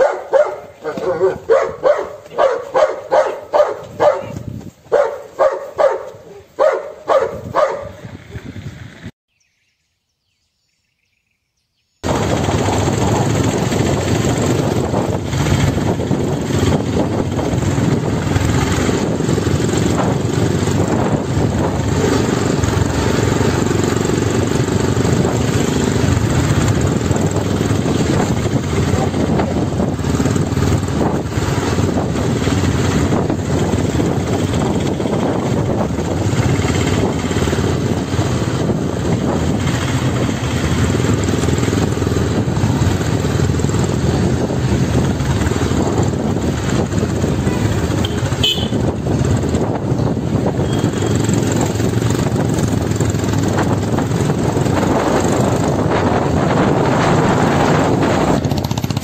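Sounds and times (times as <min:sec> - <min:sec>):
motorcycle engine rumbling: 0:00.0 - 0:09.5, 0:12.0 - 0:59.0.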